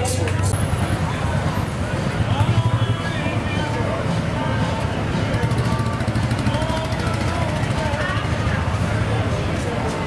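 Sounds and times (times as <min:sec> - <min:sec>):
chatter of voices: 0:00.0 - 0:10.0.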